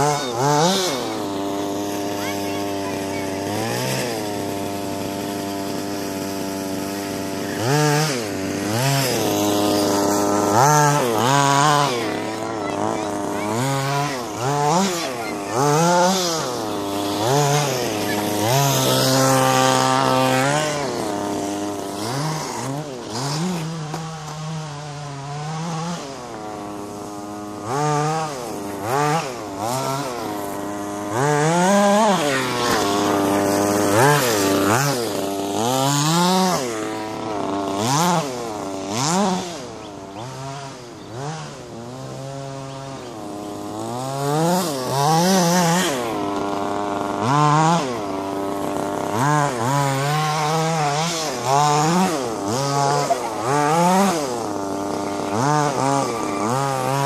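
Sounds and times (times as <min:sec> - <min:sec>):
radio-controlled buggy motors revving: 0:00.0 - 0:57.0.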